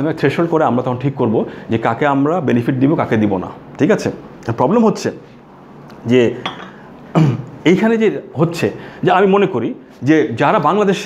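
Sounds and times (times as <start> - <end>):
ceramic mug clink: 6.4 - 6.8.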